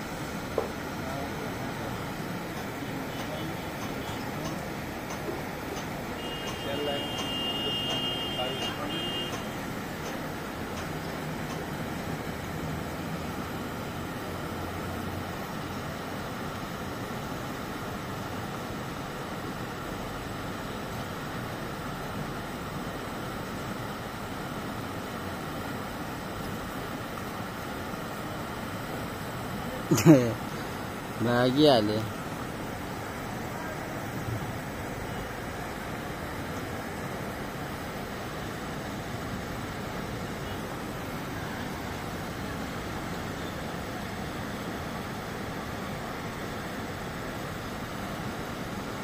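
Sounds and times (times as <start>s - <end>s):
river rushing over rocks: 9.5s - 49.0s.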